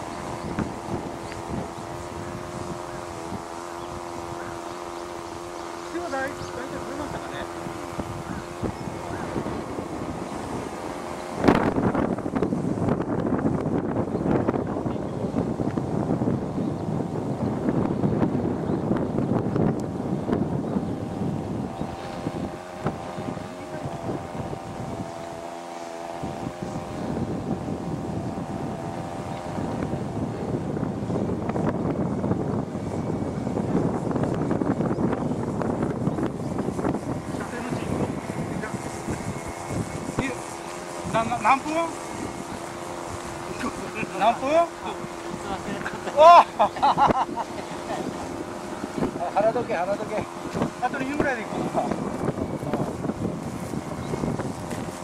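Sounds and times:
model plane engine droning: 0:00.0 - 0:55.0
wind noise on microphone: 0:00.0 - 0:55.0.

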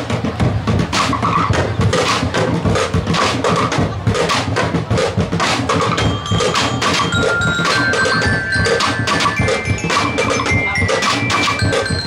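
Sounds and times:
percussion ensemble drumming: 0:00.0 - 0:12.0
high bell-like melody: 0:05.9 - 0:12.0.

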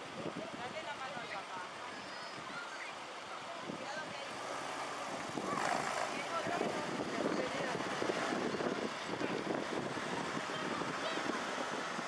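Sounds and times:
car driving slowly: 0:00.0 - 0:12.0.

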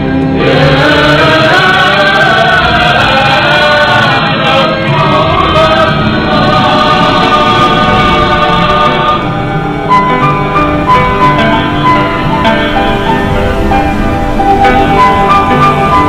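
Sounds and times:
choir singing held notes: 0:00.0 - 0:16.0
musical backing: 0:00.0 - 0:16.0.

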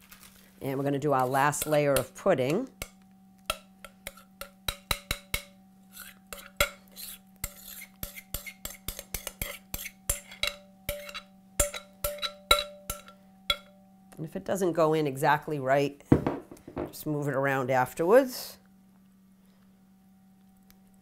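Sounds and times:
spoon tapping and scraping in bowl: 0:01.2 - 0:13.8.

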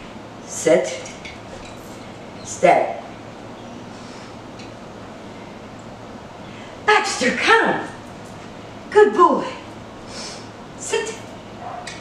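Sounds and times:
background hiss: 0:08.4 - 0:10.9.

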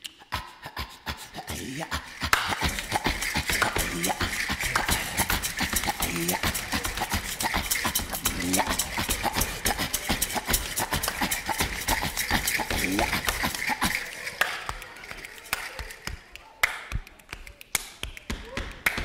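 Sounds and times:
vocal whoops: 0:00.0 - 0:14.9
mouth clicks: 0:00.0 - 0:18.4.

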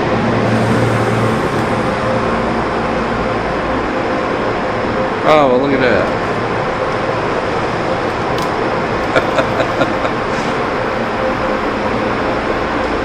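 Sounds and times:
car wash machinery running: 0:00.0 - 0:13.0.

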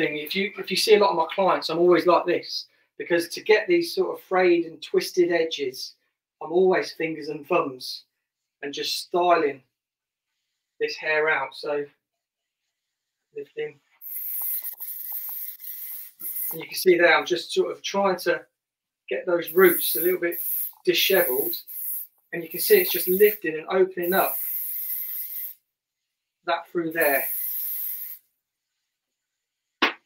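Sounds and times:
aerosol spray hissing: 0:14.0 - 0:16.9, 0:19.4 - 0:25.6, 0:26.9 - 0:28.3.

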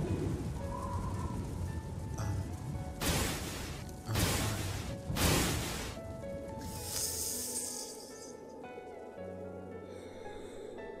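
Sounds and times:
background music: 0:00.0 - 0:11.0
high hissing sound: 0:03.0 - 0:06.0, 0:06.6 - 0:08.4
sharp noisy bursts: 0:03.0 - 0:06.0.

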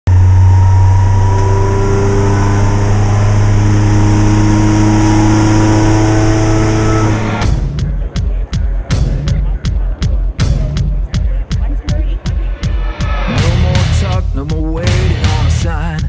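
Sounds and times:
deep rumbling drone: 0:00.0 - 0:15.8
held tones at different pitches: 0:00.1 - 0:07.7
music with a beat: 0:06.8 - 0:16.0.

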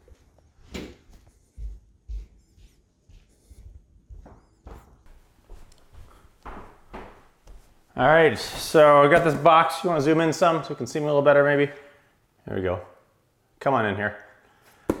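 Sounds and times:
soft footsteps: 0:00.0 - 0:09.8.

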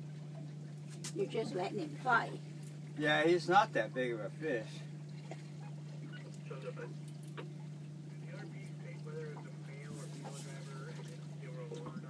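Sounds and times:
outboard motor idling: 0:00.0 - 0:12.0
faint voices: 0:08.0 - 0:12.0.

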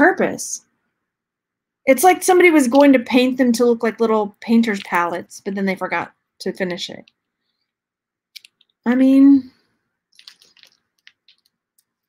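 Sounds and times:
beads clicking together: 0:10.1 - 0:12.0.

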